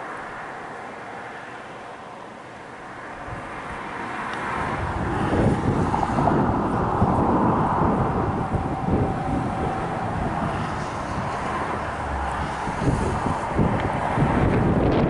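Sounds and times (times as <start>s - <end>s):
vehicle passing on highway: 0.0s - 15.0s.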